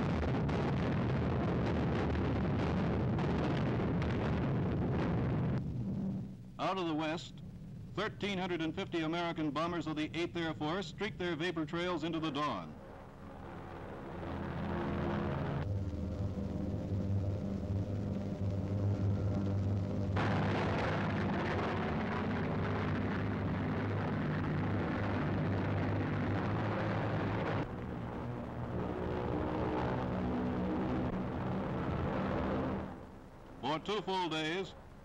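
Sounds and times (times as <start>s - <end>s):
piston engines droning: 7.2s - 34.0s.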